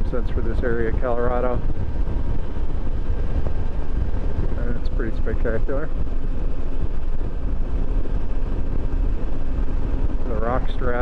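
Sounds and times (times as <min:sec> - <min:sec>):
motorcycle engine running: 0:00.0 - 0:11.0
wind rumble on microphone: 0:00.0 - 0:11.0.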